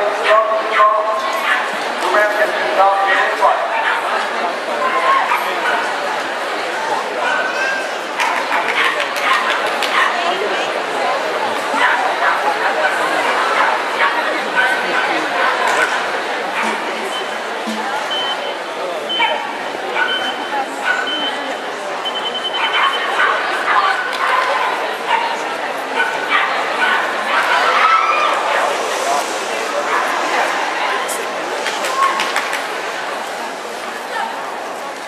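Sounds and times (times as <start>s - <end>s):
crowd voices in a hall: 0.0s - 35.0s.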